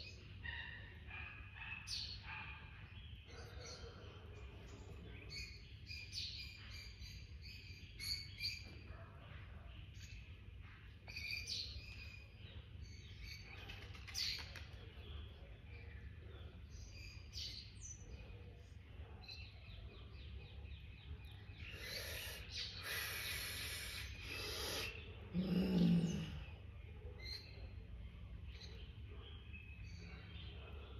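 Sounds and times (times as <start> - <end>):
birds chirping: 0.0 - 30.9.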